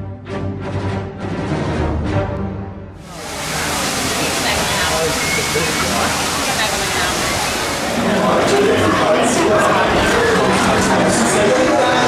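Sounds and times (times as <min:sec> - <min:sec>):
crowd chatter: 0:03.0 - 0:12.0
running water rushing: 0:03.0 - 0:12.0.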